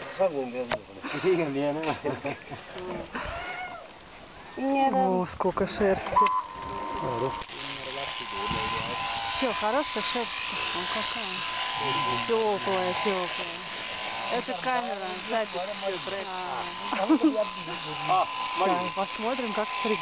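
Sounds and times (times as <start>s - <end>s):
electric clippers humming: 6.1s - 20.0s
people talking: 7.0s - 13.6s, 14.3s - 20.0s.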